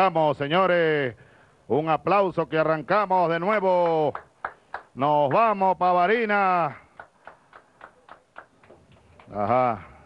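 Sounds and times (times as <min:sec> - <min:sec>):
low background hiss: 0:00.0 - 0:10.0.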